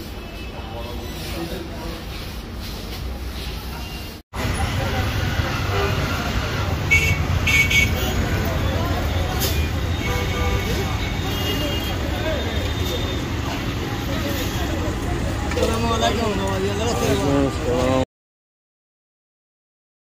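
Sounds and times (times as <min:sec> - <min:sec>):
traffic engine rumble: 0:00.0 - 0:18.1
people talking: 0:03.4 - 0:18.1.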